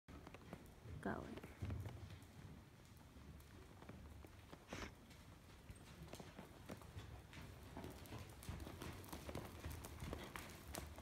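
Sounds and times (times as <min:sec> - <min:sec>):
hoofbeats on dirt: 0:00.1 - 0:11.0.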